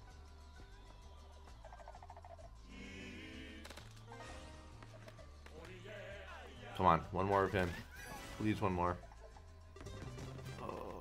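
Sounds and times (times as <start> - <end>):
slot game background music: 3.2 - 5.5, 6.6 - 11.0.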